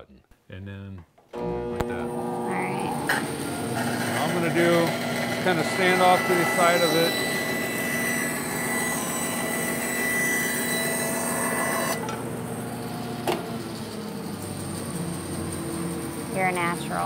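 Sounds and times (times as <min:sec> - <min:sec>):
bandsaw cutting wood: 0:01.4 - 0:16.7.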